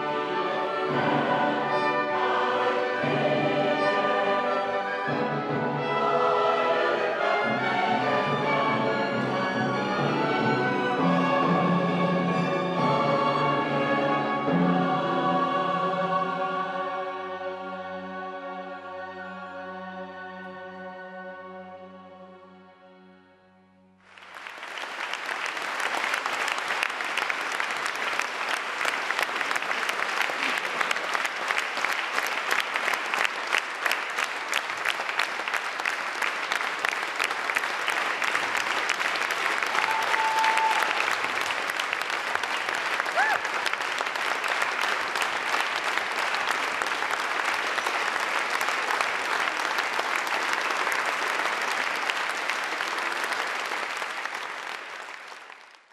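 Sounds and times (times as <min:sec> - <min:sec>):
audience clapping: 0:24.0 - 0:55.9.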